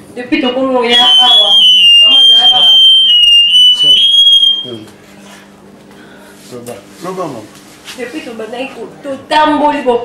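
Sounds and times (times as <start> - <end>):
loud high-pitched steady tone: 0.8 - 4.9.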